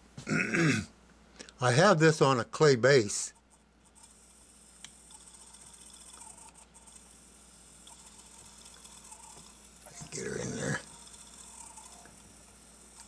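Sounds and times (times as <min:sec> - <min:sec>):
steady low hum: 0:00.0 - 0:13.0
small mechanism clicking and scraping: 0:03.5 - 0:07.2, 0:07.8 - 0:12.3.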